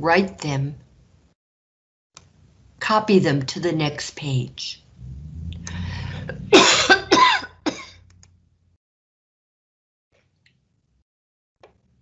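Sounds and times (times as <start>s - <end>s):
person clearing throat: 6.2s - 8.1s
person coughing: 6.3s - 8.1s.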